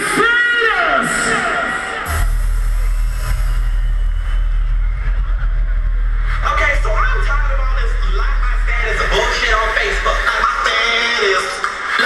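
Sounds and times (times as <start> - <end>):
deep steady bass drone: 2.1 - 11.1
processed vocal echo: 5.2 - 12.0.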